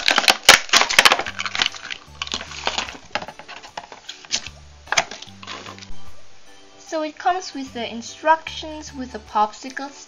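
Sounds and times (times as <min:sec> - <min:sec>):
plastic packaging crackling: 0:00.0 - 0:05.9
background music: 0:00.0 - 0:10.0.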